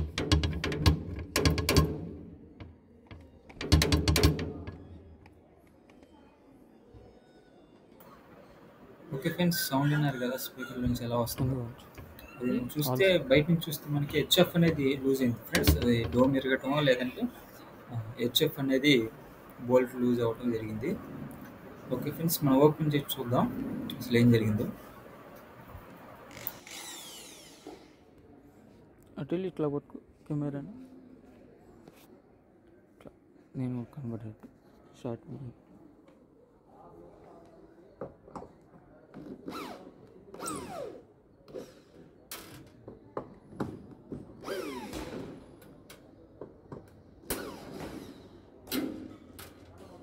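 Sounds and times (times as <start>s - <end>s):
cordless drill whirring: 26.3s - 28.0s, 44.4s - 44.9s
power tool motor whining: 26.3s - 28.0s, 44.4s - 45.1s.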